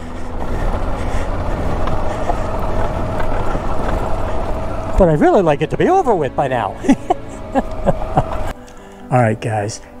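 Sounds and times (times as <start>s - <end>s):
motorcycle engine running steadily: 0.0s - 8.5s.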